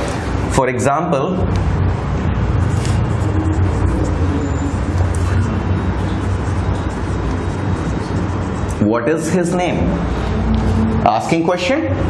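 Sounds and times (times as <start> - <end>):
low background rumble: 1.5 - 12.0
marker scratching on whiteboard: 2.5 - 11.3.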